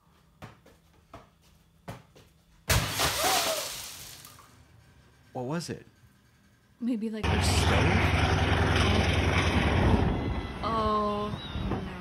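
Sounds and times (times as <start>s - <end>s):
glass shattering: 2.7s - 4.4s.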